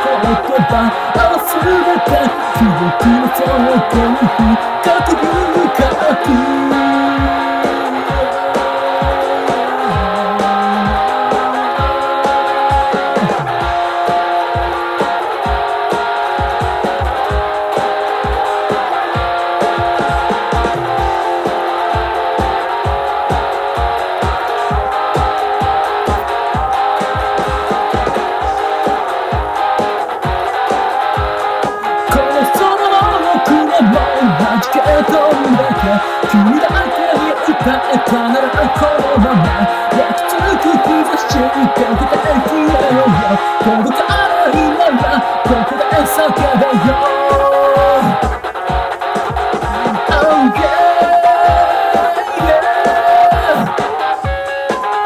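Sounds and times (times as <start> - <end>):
bass guitar: 0.0 - 55.0
electric guitar: 0.0 - 55.0
steady drum beat: 0.0 - 55.0.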